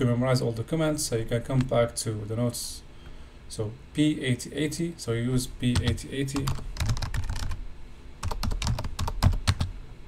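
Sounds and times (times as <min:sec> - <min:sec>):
typing on computer keyboard: 0:05.8 - 0:07.6, 0:08.2 - 0:09.7.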